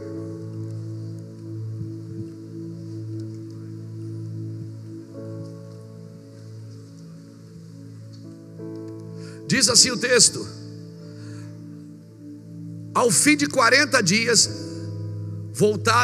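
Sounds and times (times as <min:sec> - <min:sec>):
soft keyboard pad chords: 0:00.0 - 0:16.0.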